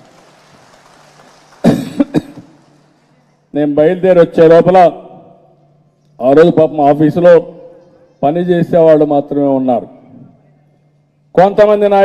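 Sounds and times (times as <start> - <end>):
microphone hiss: 0.0 - 12.0
man coughing: 1.6 - 2.5.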